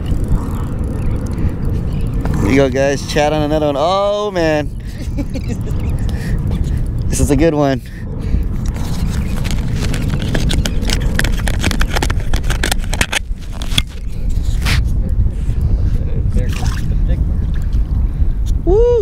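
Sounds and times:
wind rumbling on microphone: 0.0 - 19.0.

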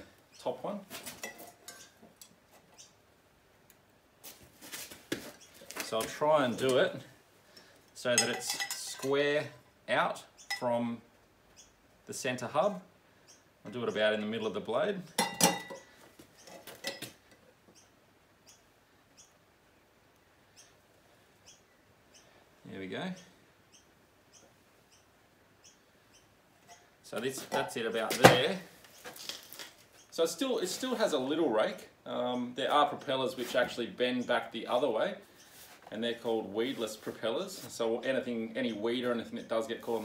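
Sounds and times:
tools scraping: 0.9 - 2.9, 15.2 - 17.2, 26.6 - 31.1.

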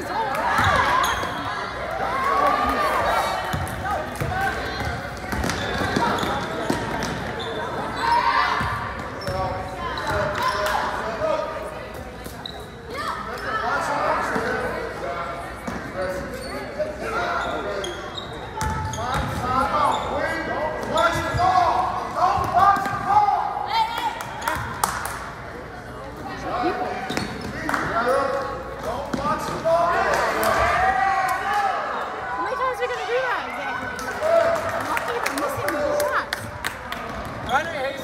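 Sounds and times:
people shouting in gym: 0.0 - 6.8, 7.6 - 11.2, 12.9 - 14.8, 20.5 - 24.8.

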